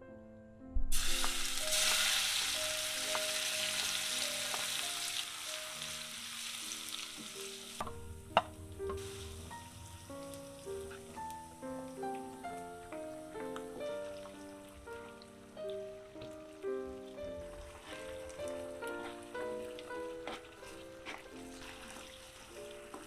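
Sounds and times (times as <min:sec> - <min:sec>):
soft piano music: 0:00.0 - 0:23.0
vegetables sizzling in hot oil: 0:00.9 - 0:08.3, 0:09.0 - 0:12.9.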